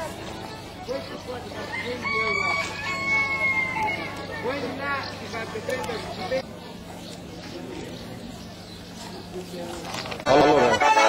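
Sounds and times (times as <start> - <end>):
rooster crowing: 1.7 - 4.1.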